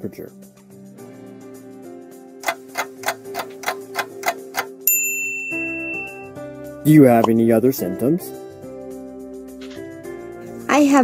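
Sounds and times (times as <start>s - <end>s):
background music: 0.0s - 11.0s
cartoon clock ticking: 2.4s - 4.8s
bright ding: 4.9s - 6.3s.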